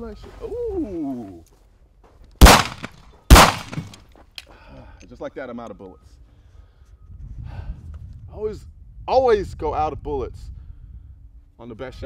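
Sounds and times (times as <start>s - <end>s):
pistol shot with echo: 2.4s - 4.0s.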